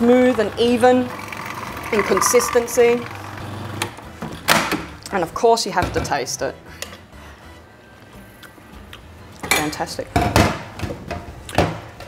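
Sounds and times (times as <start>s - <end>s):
food processor motor running: 0.4s - 4.0s.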